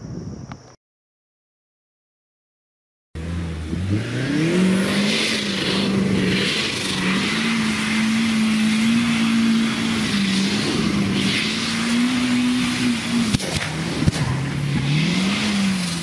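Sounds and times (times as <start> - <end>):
car engine at high revs: 3.2 - 16.0
rushing hiss: 4.6 - 16.0.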